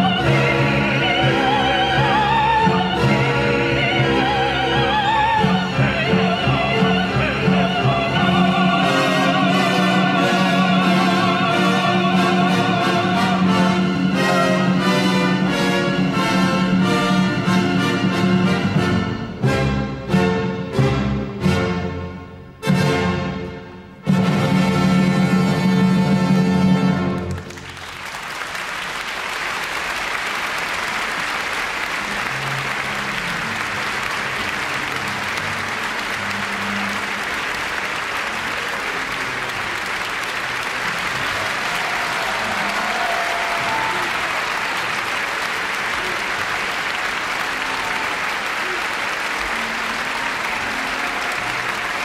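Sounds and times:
audience applauding: 27.0 - 52.0.

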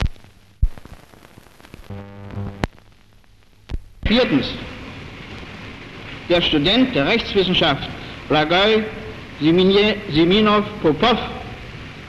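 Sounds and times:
faint background crackle: 0.0 - 12.0
film soundtrack hum: 0.0 - 12.0.

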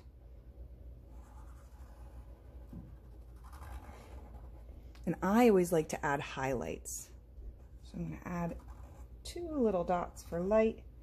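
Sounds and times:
marker scratching on paper: 1.0 - 5.5, 7.6 - 9.7.

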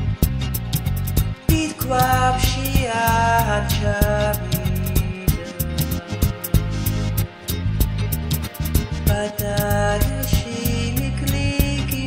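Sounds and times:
electronic music: 0.0 - 12.0.

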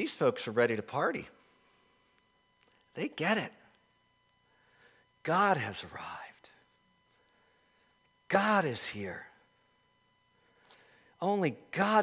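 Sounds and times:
man speaking: 0.0 - 1.4, 2.9 - 3.7, 5.2 - 6.6, 8.3 - 9.4, 11.2 - 12.0
faint steady high tones: 0.0 - 12.0.

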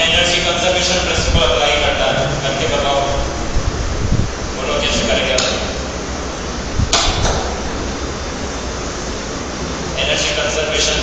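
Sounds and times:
low hum: 0.0 - 10.8
background hiss: 0.0 - 11.0.

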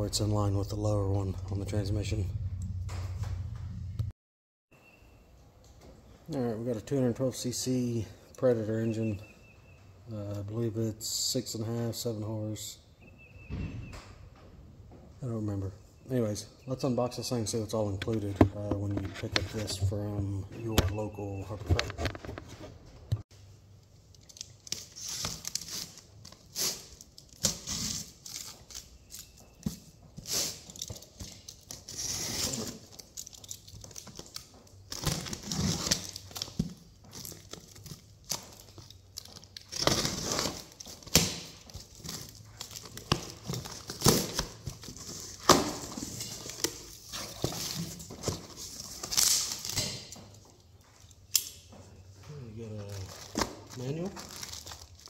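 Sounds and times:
plastic wrap tearing and crinkling: 24.2 - 29.3, 33.9 - 45.4, 53.0 - 55.0.

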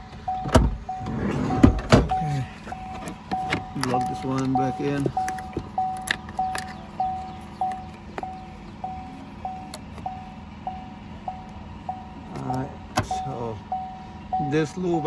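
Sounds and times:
car warning chime beeping: 0.0 - 15.0.

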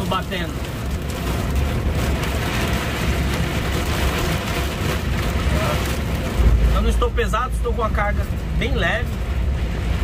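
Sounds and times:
rain and ice pelting a roof: 0.0 - 10.0.

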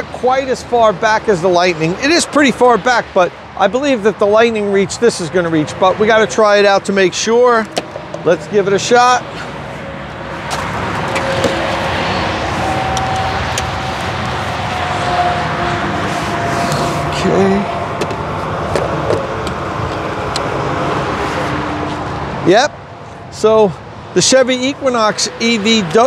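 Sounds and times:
road traffic roar: 0.0 - 26.0.

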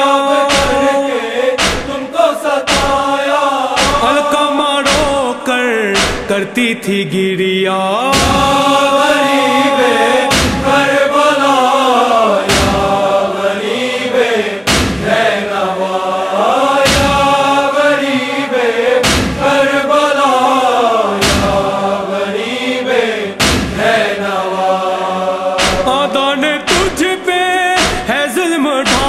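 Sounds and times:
slow lament chanting: 0.0 - 29.0
deep thumping beat: 0.5 - 0.8, 1.6 - 2.0, 2.7 - 3.1, 3.8 - 5.3, 6.0 - 6.4, 8.1 - 9.1, 10.3 - 11.0, 12.5 - 13.2, 14.7 - 15.3, 16.9 - 17.6, 19.0 - 19.7, 21.2 - 21.8, 23.4 - 24.1, 25.6 - 28.2.

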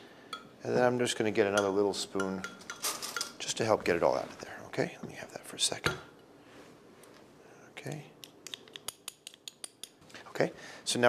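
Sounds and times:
spoon clicking and scraping: 1.6 - 3.4, 8.2 - 10.0.

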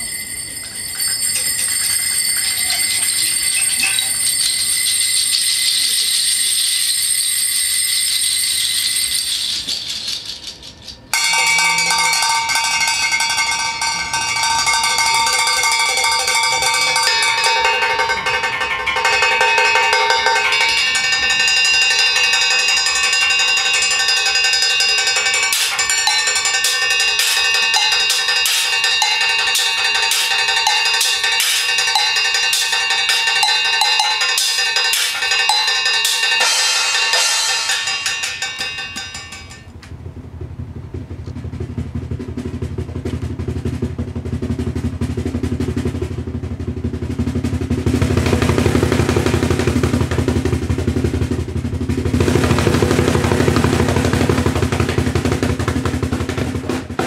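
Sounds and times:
bell-like ringing tones: 0.0 - 39.7
high metallic shimmer: 0.0 - 39.7
sharp metal strikes: 11.1 - 39.7.

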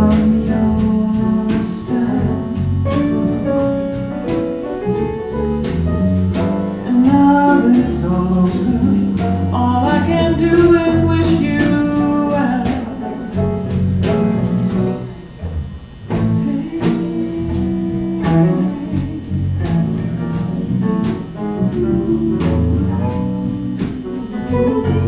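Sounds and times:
person singing: 0.0 - 3.4, 6.8 - 13.4, 16.1 - 20.6, 21.6 - 25.0
live blues band playing: 0.0 - 25.0.

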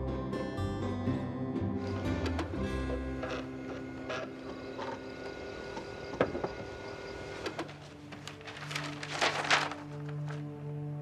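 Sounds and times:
fax machine whirring: 1.8 - 9.8
paper scraping: 7.3 - 10.5.

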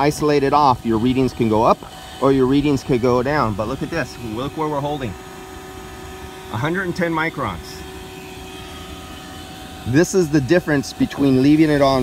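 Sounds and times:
air conditioning unit humming: 0.0 - 12.0.

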